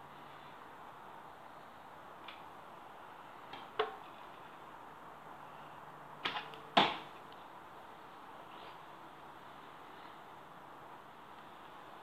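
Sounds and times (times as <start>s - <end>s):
arrows thwacking cardboard targets: 6.2s - 7.3s.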